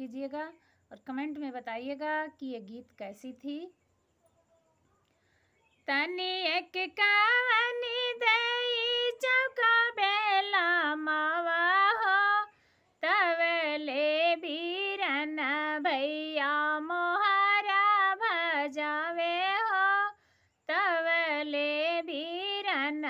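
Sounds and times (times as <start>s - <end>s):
woman singing unaccompanied folk song: 0.0s - 3.9s, 5.4s - 23.0s.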